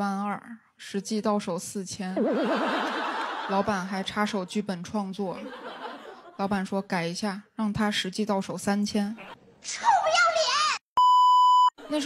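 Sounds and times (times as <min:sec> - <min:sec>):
electronic bleep tone: 0:11.0 - 0:11.7.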